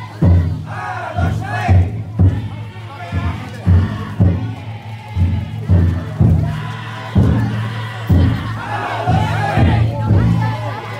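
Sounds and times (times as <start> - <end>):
deep taiko drum booms: 0.0 - 10.7
crowd calling out together: 0.0 - 10.9.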